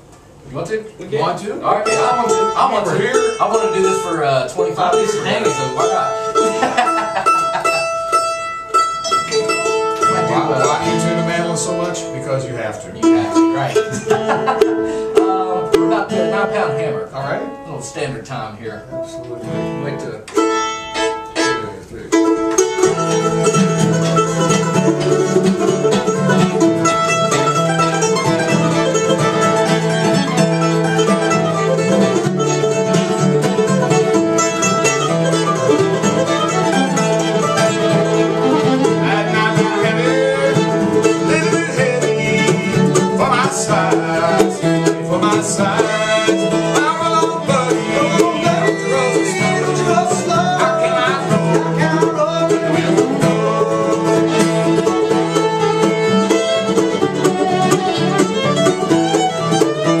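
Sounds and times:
strummed acoustic guitar: 0:01.6 - 1:00.0
fiddle: 0:01.7 - 1:00.0
mandolin strings plucked: 0:01.7 - 1:00.0.

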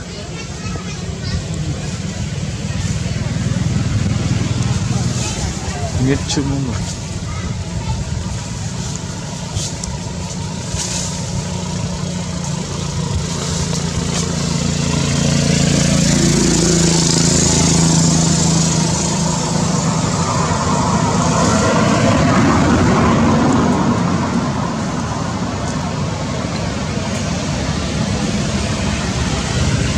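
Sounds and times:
motor engine running: 0:00.0 - 0:29.9.

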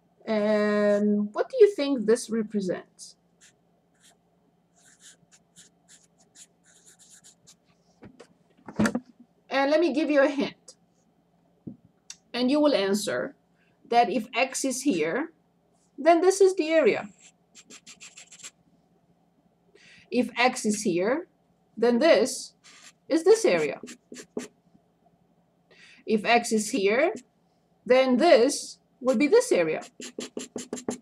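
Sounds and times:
marker writing on paper: 0:03.4 - 0:04.2, 0:04.8 - 0:07.6, 0:17.1 - 0:18.5, 0:22.6 - 0:24.5, 0:29.7 - 0:31.0.

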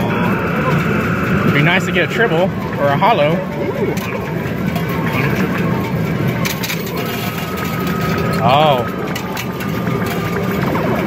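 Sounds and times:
steady electronic tone: 0:00.0 - 0:06.1
arcade background noise: 0:00.0 - 0:11.0
metal tokens clinking: 0:03.4 - 0:11.0.

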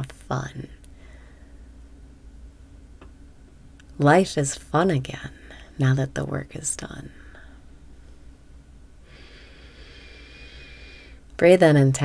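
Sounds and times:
person breathing through nose: 0:09.1 - 0:11.2.

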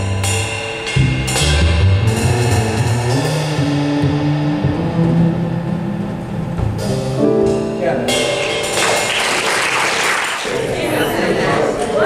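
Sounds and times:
double bass plucked notes: 0:00.0 - 0:08.8.

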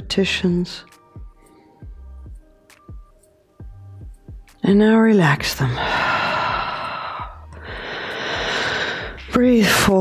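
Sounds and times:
woman breathing into microphone: 0:05.8 - 0:09.2.

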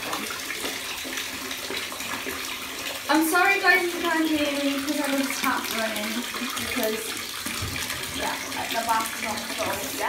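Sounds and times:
water pouring into bathtub: 0:00.0 - 0:10.0.

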